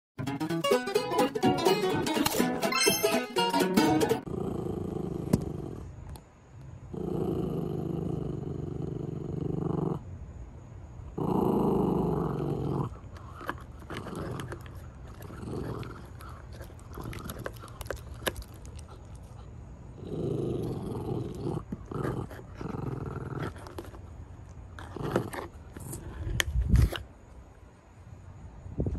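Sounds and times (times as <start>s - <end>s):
dog gnawing on chew: 12.5s - 27.0s
dog chewing clicks: 13.1s - 19.5s.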